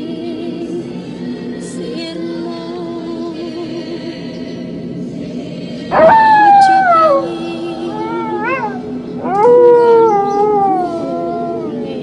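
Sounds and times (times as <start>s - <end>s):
low steady drone: 0.0s - 12.0s
high howling wails: 5.9s - 12.0s.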